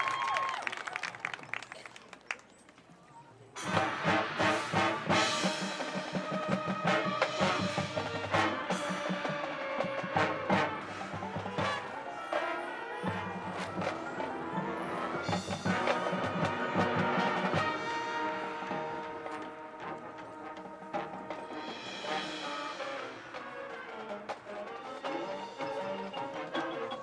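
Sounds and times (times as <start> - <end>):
crowd clapping and cheering: 0.0 - 2.9
marching band playing: 3.6 - 27.0
timpani: 3.6 - 27.0.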